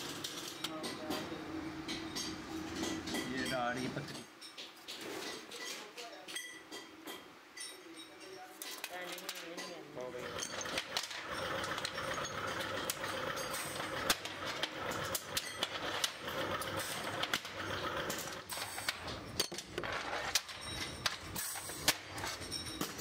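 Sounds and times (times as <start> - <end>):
metal parts clinking: 7.6 - 23.0
machine running: 10.2 - 20.4.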